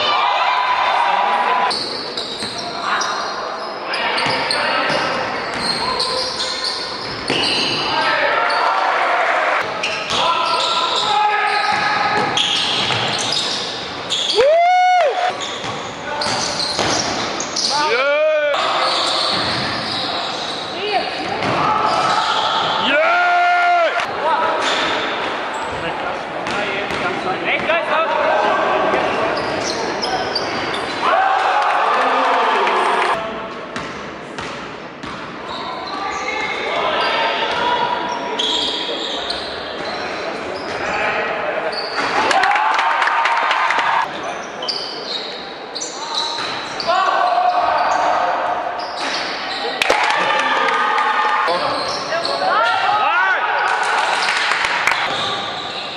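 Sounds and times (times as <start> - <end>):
shoe squeaks on floor: 1.7 - 8.7, 9.8 - 14.4, 15.3 - 17.9, 18.8 - 21.1, 29.3 - 31.0, 38.0 - 41.0, 41.7 - 42.2, 44.1 - 47.0, 48.8 - 49.8, 51.6 - 52.5, 55.1 - 55.9.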